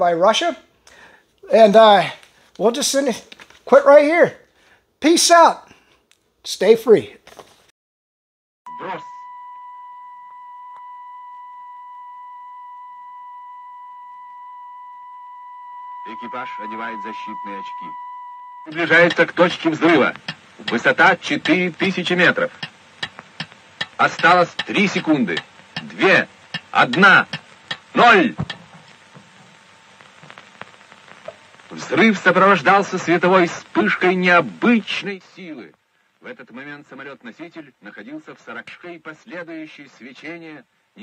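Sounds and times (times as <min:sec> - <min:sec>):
film soundtrack surface hiss: 0:00.0 - 0:07.7, 0:16.0 - 0:18.0, 0:18.7 - 0:41.0
small crackles and clicks: 0:02.2 - 0:03.7, 0:18.7 - 0:35.0
high-pitched electronic tone: 0:08.7 - 0:29.0.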